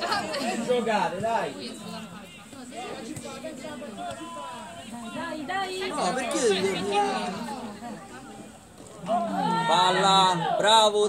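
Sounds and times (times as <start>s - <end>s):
spectators chattering and calling out: 0.0s - 11.0s.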